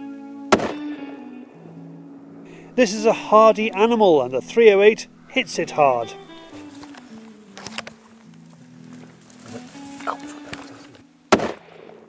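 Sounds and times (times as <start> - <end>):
low sustained music: 0.0 - 12.0
rifle shot: 11.3 - 12.0.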